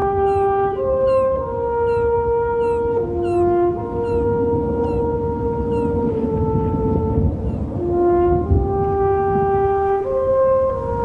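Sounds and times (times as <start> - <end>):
low steady rumble: 0.0 - 11.0
slow brass horn melody: 0.0 - 11.0.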